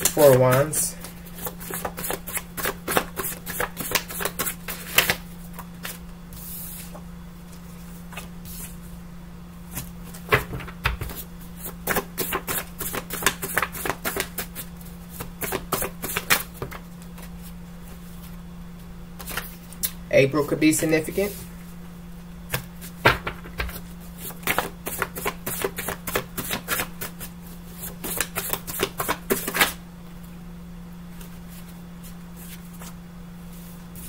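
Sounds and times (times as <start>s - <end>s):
cards being shuffled: 0.0s - 7.0s, 9.7s - 17.5s, 23.6s - 27.2s, 27.8s - 29.8s
steady low hum: 0.0s - 34.0s.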